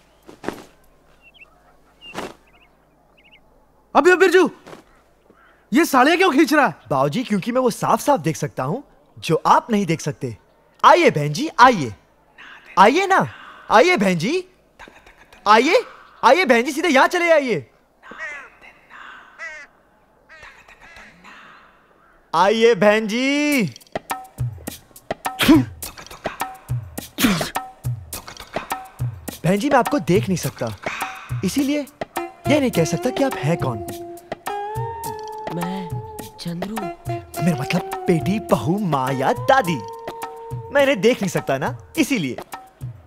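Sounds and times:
fabric whooshing through air: 0.0 - 0.8, 2.0 - 2.6
faint bird chirps: 0.0 - 4.0.

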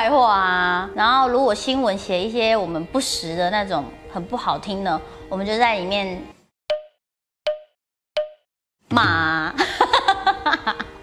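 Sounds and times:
pop sound effects: 6.7 - 9.2
woman speaking loudly: 8.9 - 9.6.

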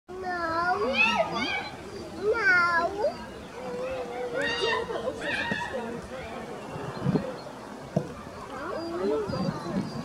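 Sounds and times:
young children chattering: 0.1 - 10.0.

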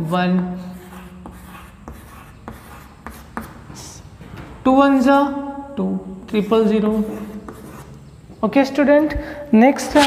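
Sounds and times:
chalk scratching on chalkboard: 0.0 - 4.0, 6.2 - 8.1
chalk tapping on chalkboard: 0.4 - 3.8, 6.2 - 8.0.

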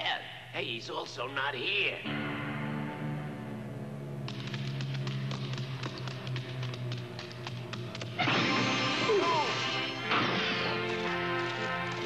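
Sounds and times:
quick percussive clicks: 4.3 - 8.2.

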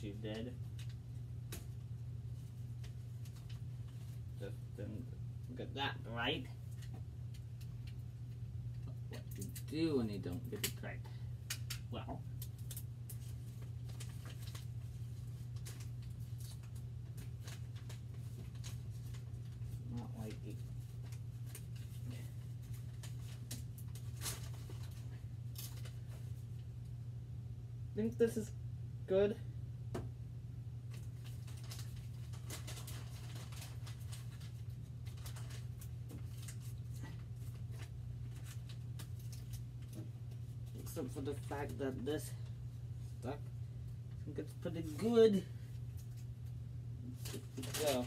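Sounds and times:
steady low hum: 0.0 - 48.0
hands clicking and rustling: 11.4 - 14.7.

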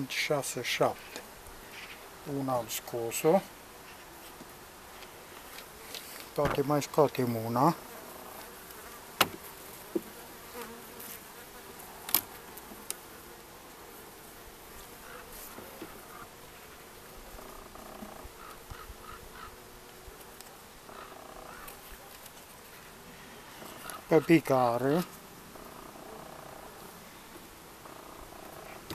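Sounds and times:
honeybees humming: 0.0 - 28.9
hive tool prying wooden frames: 9.2 - 10.1.

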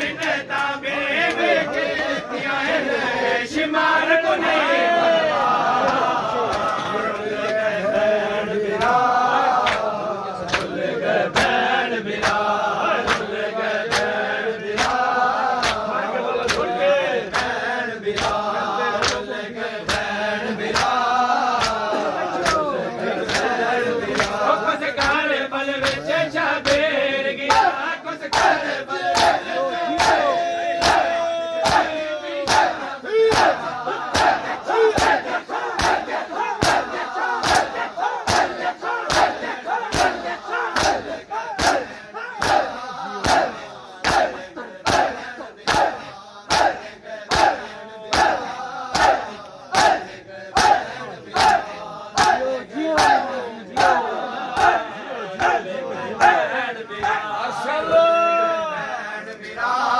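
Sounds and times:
crowd shouting and chanting: 0.0 - 59.9
hands slapping bare chests: 9.6 - 11.6, 12.2 - 16.7, 19.0 - 20.1, 20.7 - 24.4, 25.0 - 25.2, 28.3 - 30.2, 30.8 - 50.0, 52.2 - 53.2.

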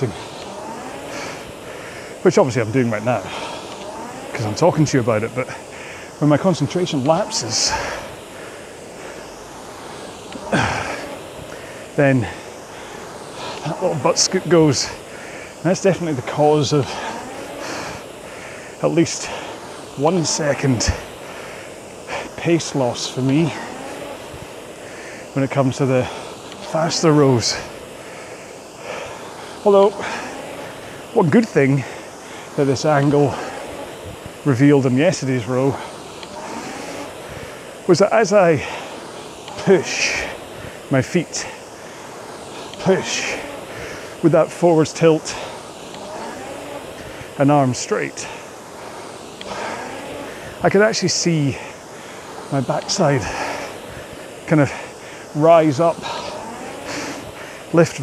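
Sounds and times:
rowing machine flywheel whoosh: 0.0 - 58.0
person exhaling: 10.4 - 13.7
person speaking: 42.7 - 43.6.

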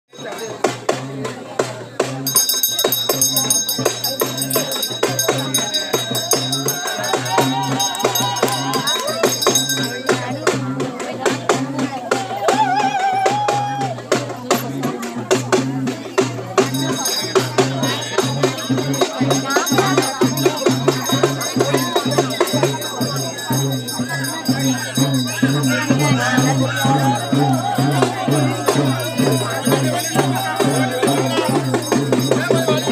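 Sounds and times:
jingling tambourine percussion: 0.1 - 32.9
steady drumbeat: 0.1 - 32.9
wavering melody line: 16.6 - 32.9.

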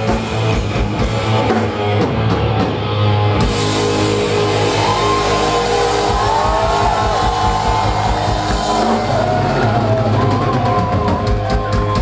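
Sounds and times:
bass guitar: 0.0 - 12.0
distorted electric guitars: 0.0 - 12.0.

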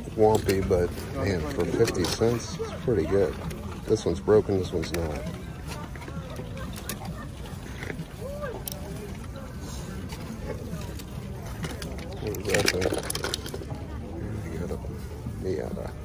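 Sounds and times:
toy cars clattering in a box: 11.6 - 13.8.

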